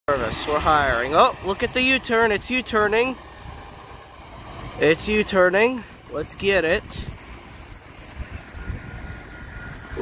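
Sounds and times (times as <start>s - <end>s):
bus engine and tyre rumble: 0.1s - 10.0s
road traffic: 0.1s - 10.0s.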